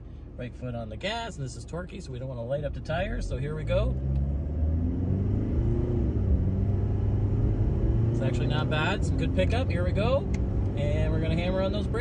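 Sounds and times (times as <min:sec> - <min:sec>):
diesel truck accelerating: 0:00.0 - 0:12.0.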